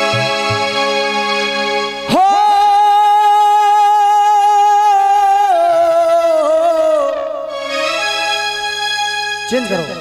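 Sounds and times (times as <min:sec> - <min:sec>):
man singing a long note: 0:02.1 - 0:07.5.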